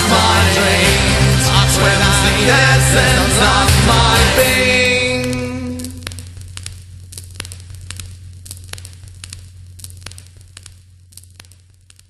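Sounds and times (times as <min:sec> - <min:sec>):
song on soundtrack: 0:00.0 - 0:06.1
steady low hum: 0:00.0 - 0:12.0
crackling clicks: 0:04.7 - 0:12.0.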